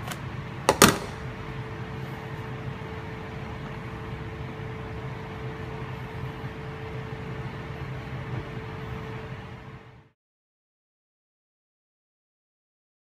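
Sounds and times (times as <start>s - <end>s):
kitchen equipment humming: 0.0s - 10.0s
thin steady whine: 0.0s - 10.2s.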